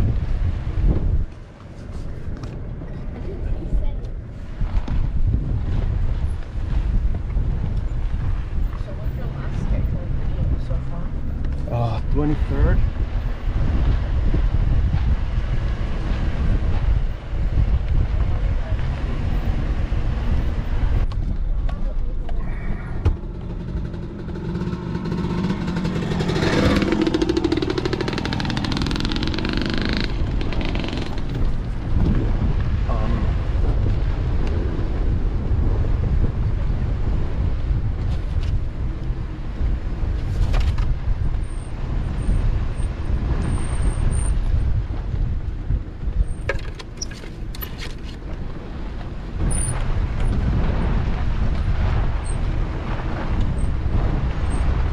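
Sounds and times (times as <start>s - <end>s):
vehicle engine rumble: 0.0s - 54.9s
tyres over dirt and gravel: 21.1s - 34.6s.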